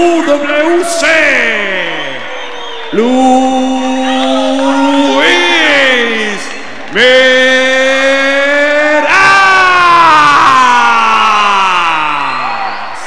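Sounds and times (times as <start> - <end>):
announcer calling out name: 3.0 - 9.3.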